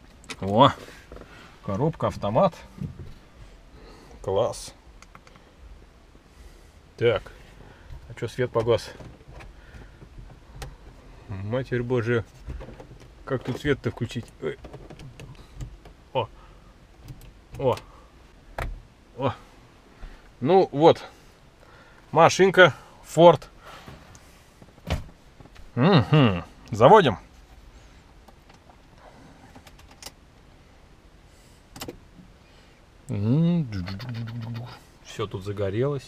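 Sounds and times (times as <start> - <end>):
man's wordless voice: 1.6 - 2.9, 11.3 - 12.3, 13.2 - 14.7, 33.1 - 36.0
person speaking: 33.1 - 36.0.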